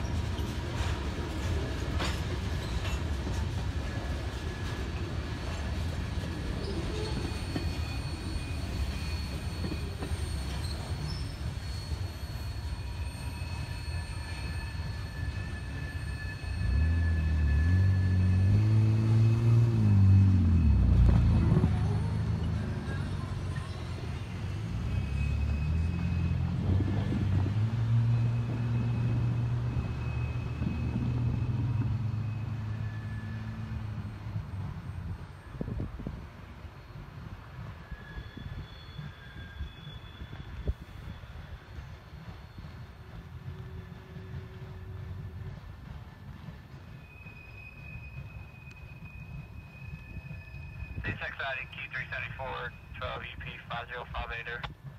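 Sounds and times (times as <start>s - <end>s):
freight train rumbling: 0.0s - 54.9s
wheel squeal: 6.6s - 19.4s, 22.0s - 26.8s, 28.1s - 33.6s, 37.8s - 42.9s, 46.9s - 51.0s.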